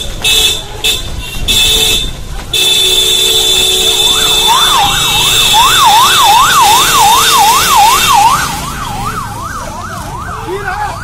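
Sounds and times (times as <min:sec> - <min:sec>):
vehicle siren sweeping: 0:04.0 - 0:11.0.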